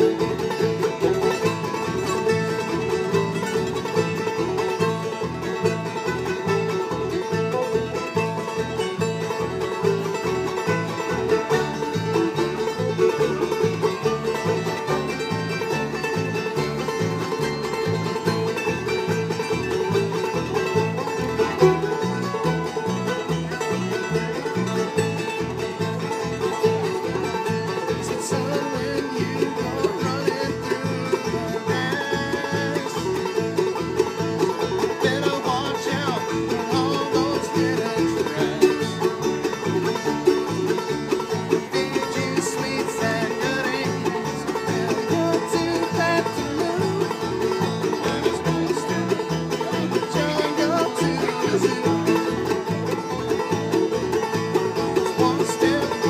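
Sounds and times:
banjo picking: 0:00.0 - 0:56.0
string instrument: 0:00.0 - 0:56.0
upright bass line: 0:00.0 - 0:56.0.

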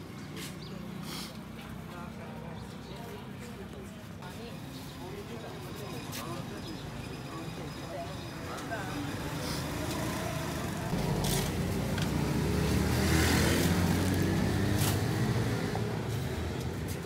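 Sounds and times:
background chatter: 0:00.3 - 0:13.0
vehicle engine passing by: 0:09.2 - 0:17.0.

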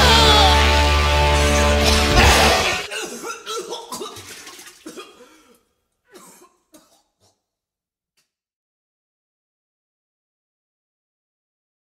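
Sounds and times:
coughing-like voice bursts: 0:01.4 - 0:07.4.

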